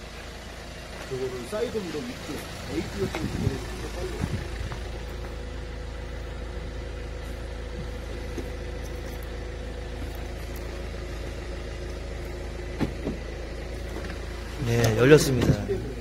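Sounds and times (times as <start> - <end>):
minivan idling: 0.0 - 16.0.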